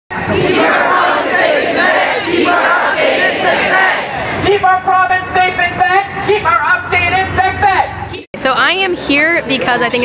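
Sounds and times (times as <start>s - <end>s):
crowd shouting together: 0.1s - 4.4s.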